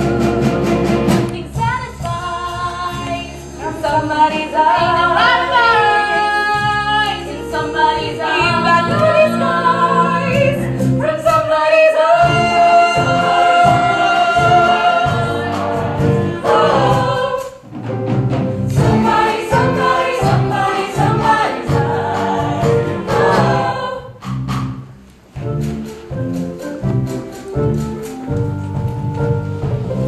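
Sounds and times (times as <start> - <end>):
women singing together: 1.4 - 17.6, 18.8 - 24.2.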